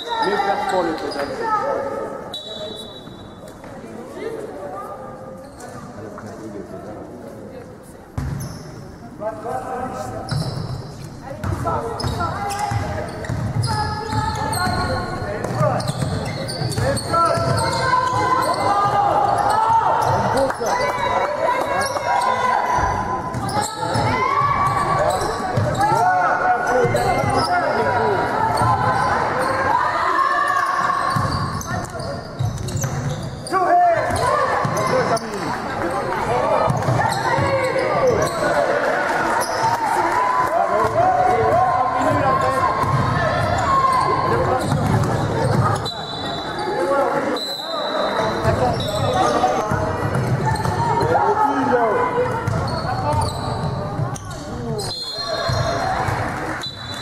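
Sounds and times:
shoes squeaking on court: 0.2s - 1.6s, 8.1s - 9.0s, 10.0s - 22.4s, 23.3s - 26.0s, 26.6s - 29.7s, 30.4s - 38.6s, 42.4s - 51.2s, 52.2s - 56.0s.

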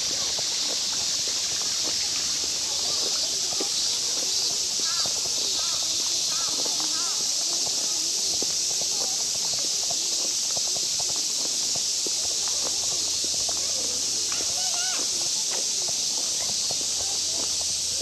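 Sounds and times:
distant people's voices: 0.0s - 18.0s
footsteps on paved path: 0.0s - 18.0s
steady high hiss: 0.0s - 18.0s.

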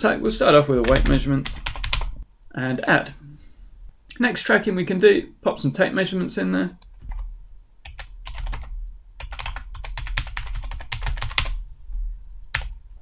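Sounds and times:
typing on keyboard: 0.8s - 2.1s, 7.8s - 11.6s, 12.5s - 12.7s.

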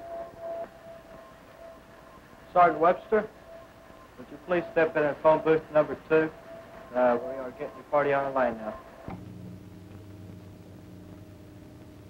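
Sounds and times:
faint high-pitched tone: 0.0s - 9.2s
low hiss: 0.0s - 12.0s.

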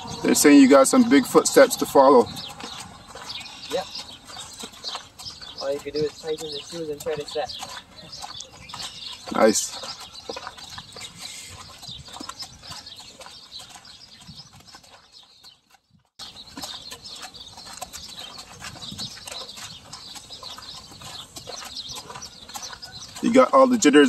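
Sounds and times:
horse hooves walking: 0.0s - 24.0s
people walking: 0.0s - 24.0s.

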